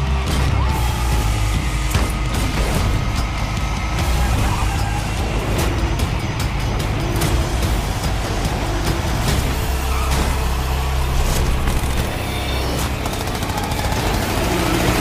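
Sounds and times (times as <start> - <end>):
trailer music: 0.0 - 15.0
sharp hits: 0.2 - 14.6.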